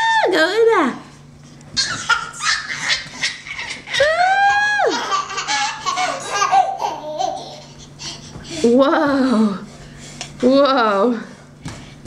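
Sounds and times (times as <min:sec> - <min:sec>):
toddler laughing and squealing: 0:01.8 - 0:08.4.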